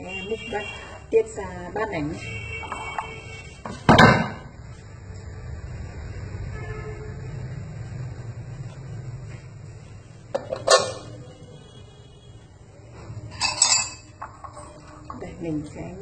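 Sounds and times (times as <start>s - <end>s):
kitchenware knocking on worktop: 2.6s - 4.5s
pot lid clattering: 10.4s - 11.1s.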